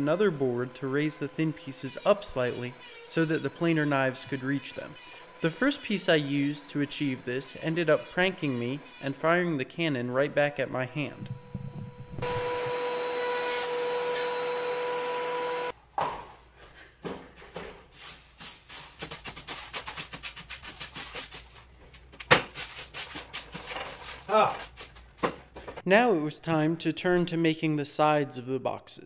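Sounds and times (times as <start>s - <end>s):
thickness planer humming: 0.0s - 15.7s.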